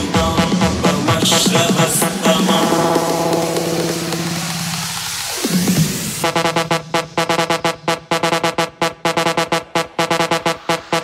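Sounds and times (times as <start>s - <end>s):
held buzzy synth note: 2.7s - 5.0s, 6.2s - 11.0s.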